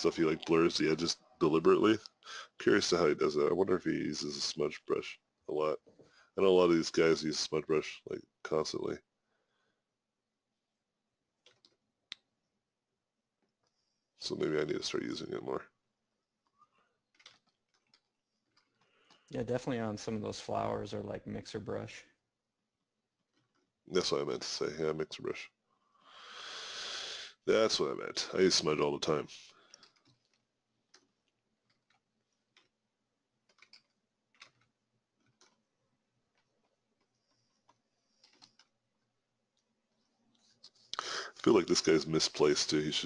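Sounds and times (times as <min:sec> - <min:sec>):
small clicks: 0:11.4 - 0:12.4, 0:16.4 - 0:19.3, 0:29.4 - 0:41.5.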